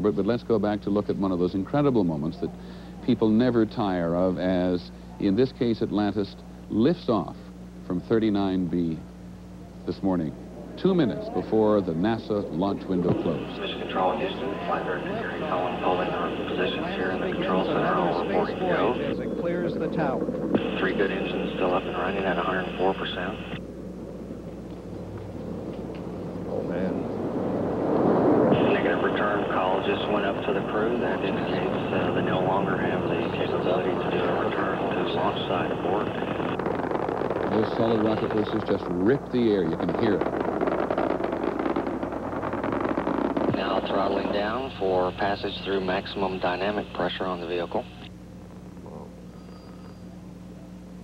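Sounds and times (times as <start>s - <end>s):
rocket exhaust roar: 0.0s - 50.3s
low electrical hum with hiss: 0.0s - 51.0s.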